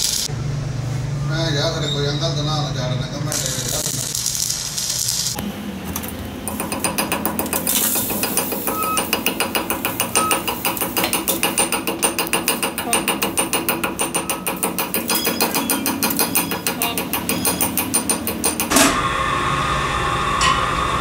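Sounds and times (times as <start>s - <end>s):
chipping hammer striking metal: 6.5s - 19.1s.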